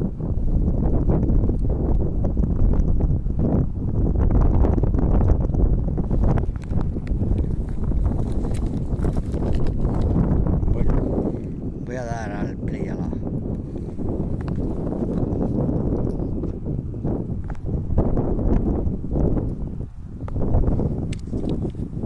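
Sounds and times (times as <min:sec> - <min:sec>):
wind buffeting microphone: 0:00.0 - 0:22.0
footsteps crunching through dry stubble: 0:06.6 - 0:11.3.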